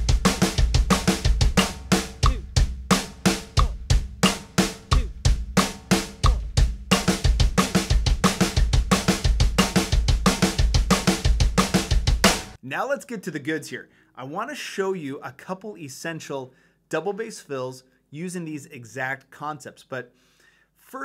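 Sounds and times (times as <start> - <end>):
kick drum strokes: 0.0 - 12.6
snare drum strokes: 0.0 - 12.6.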